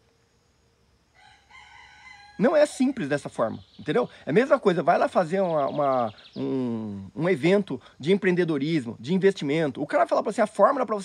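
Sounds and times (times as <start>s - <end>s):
faint rooster crow: 1.1s - 3.2s.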